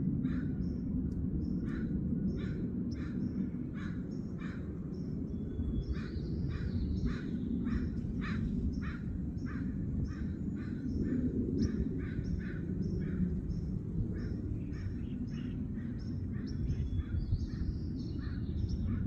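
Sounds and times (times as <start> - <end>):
steady low rumble: 0.0 - 19.0
birds calling: 1.6 - 19.0.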